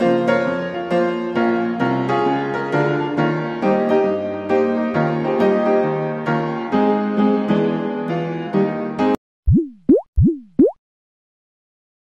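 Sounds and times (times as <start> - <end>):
background piano music: 0.0 - 9.2
synthetic cartoon bloops: 9.5 - 10.8.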